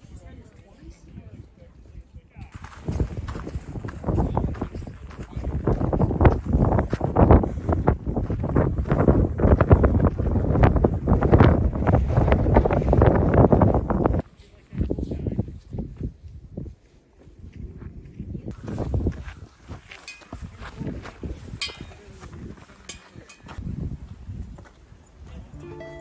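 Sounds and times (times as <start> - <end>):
wind buffeting microphone: 0.0 - 25.5.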